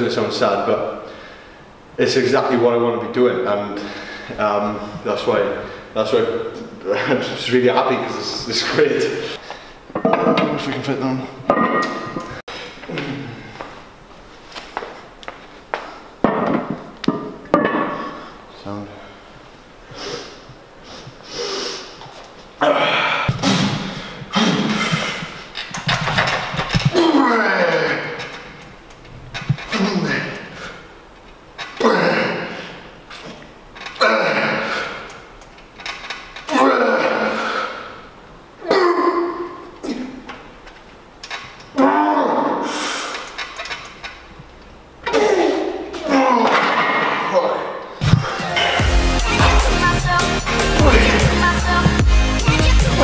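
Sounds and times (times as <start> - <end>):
man grunting and straining: 12.8 - 13.6, 22.6 - 25.5, 26.8 - 28.5, 29.6 - 30.8, 31.7 - 32.9, 33.9 - 35.1, 36.5 - 38.0, 38.6 - 40.3, 41.7 - 43.2, 45.0 - 48.6, 50.6 - 51.6
man groaning with effort: 22.6 - 25.0, 26.9 - 28.2, 29.7 - 30.5, 31.8 - 32.7, 34.0 - 34.9, 36.5 - 37.9, 41.8 - 42.8, 50.7 - 51.6
man crying out: 26.9 - 28.2, 50.7 - 51.7.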